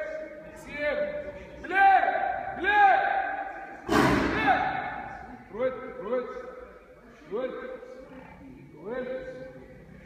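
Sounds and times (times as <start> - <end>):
man shouting commands: 0.0 - 3.5, 4.2 - 5.0
sharp crack echoing: 3.2 - 5.0.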